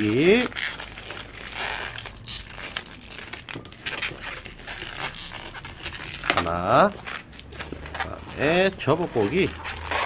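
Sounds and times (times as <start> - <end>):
balloon rubber rubbing and rustling: 0.0 - 10.0.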